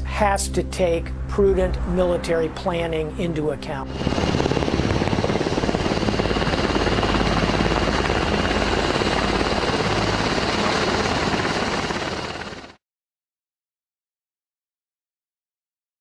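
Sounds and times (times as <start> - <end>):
helicopter rotor and engine: 3.4 - 12.8.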